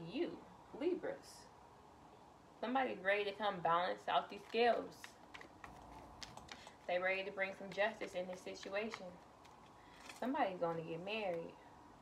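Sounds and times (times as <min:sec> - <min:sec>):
cards being shuffled: 0:04.3 - 0:11.5.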